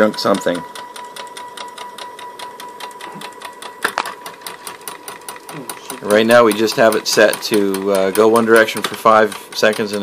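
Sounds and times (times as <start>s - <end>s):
stepper motor whining and ticking: 0.0s - 10.0s.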